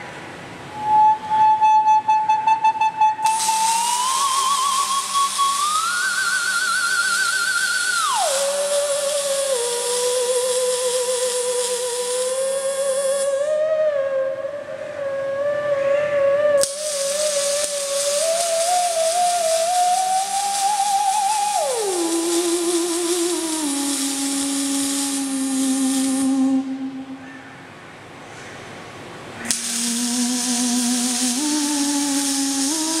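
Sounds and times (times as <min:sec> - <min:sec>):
theremin with wide vibrato: 0:00.7 - 0:27.2, 0:29.6 - 0:33.0
welding arcs hissing and crackling: 0:03.2 - 0:13.5, 0:16.6 - 0:26.5, 0:29.5 - 0:33.0
sharp click: 0:29.4 - 0:30.0.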